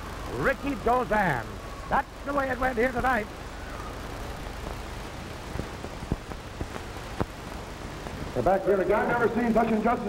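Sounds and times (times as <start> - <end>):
tape hiss: 0.0 - 10.0
sharp clicks and crackles: 4.1 - 7.6.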